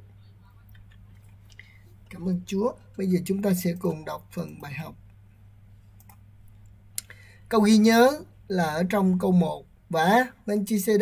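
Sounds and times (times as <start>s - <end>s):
faint low hum: 0.0s - 11.0s
computer mouse clicking: 6.0s - 7.1s.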